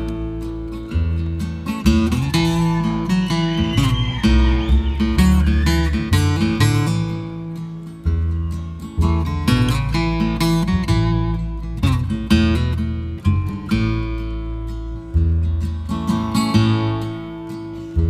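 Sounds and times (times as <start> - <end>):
bass guitar: 0.0 - 18.0
strummed guitar: 0.0 - 18.0.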